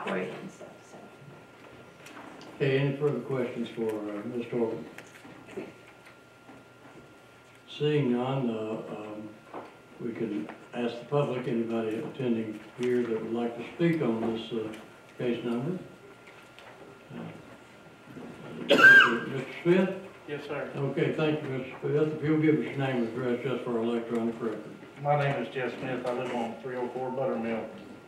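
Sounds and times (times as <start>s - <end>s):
man coughing: 18.7s - 19.4s
man saying uh: 18.9s - 27.8s.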